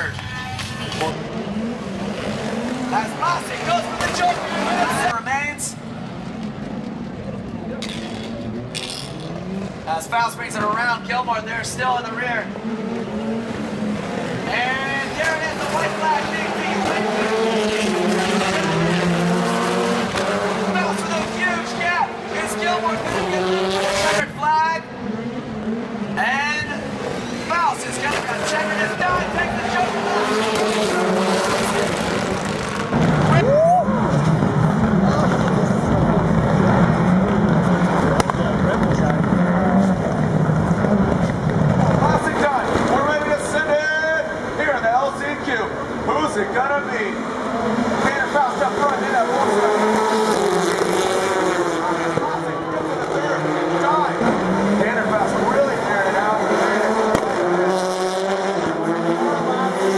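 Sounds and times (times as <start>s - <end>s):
race car engines revving: 0.0s - 59.9s.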